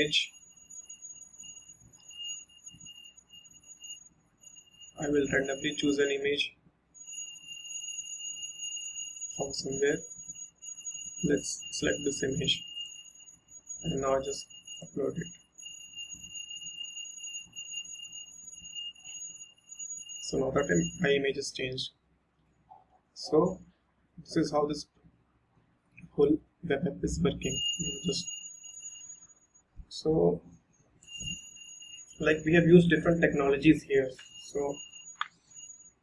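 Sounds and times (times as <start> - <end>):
high-pitched electrical whine: 0.0 - 21.9, 26.7 - 29.3, 31.0 - 36.0.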